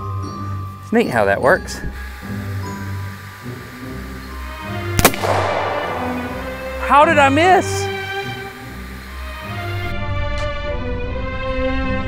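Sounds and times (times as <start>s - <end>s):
background music: 0.0s - 12.0s
pistol shot: 5.0s - 6.8s.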